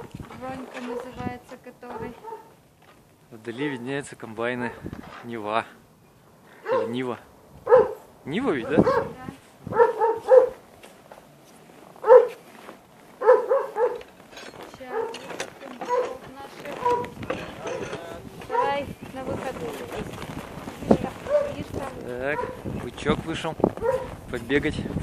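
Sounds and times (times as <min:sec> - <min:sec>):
dog barking: 0:00.8 - 0:01.2, 0:01.9 - 0:02.6, 0:06.6 - 0:07.0, 0:07.6 - 0:08.0, 0:08.6 - 0:10.6, 0:12.0 - 0:12.4, 0:13.2 - 0:14.1, 0:14.9 - 0:17.8, 0:18.5 - 0:18.8, 0:21.3 - 0:22.6, 0:23.8 - 0:24.2.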